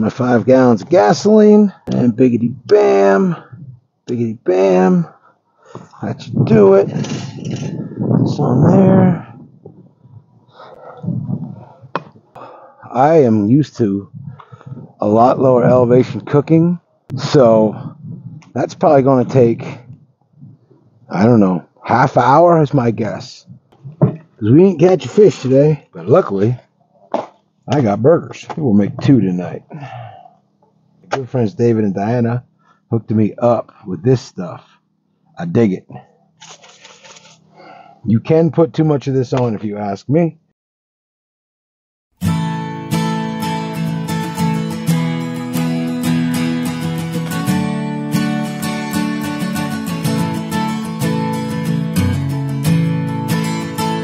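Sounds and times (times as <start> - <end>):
man murmuring: 1.6 - 5.2, 5.9 - 9.4, 17.1 - 18.5, 25.4 - 26.6.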